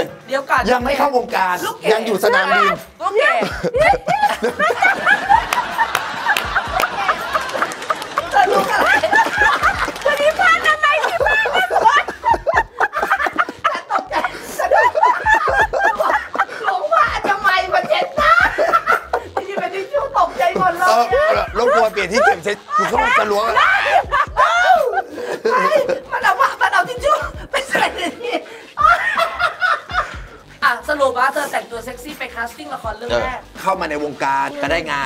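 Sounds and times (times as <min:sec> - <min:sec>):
quiet background music: 0:00.0 - 0:35.0
laughing talk: 0:02.1 - 0:30.4
people laughing: 0:02.2 - 0:30.4
people chuckling: 0:03.4 - 0:30.4.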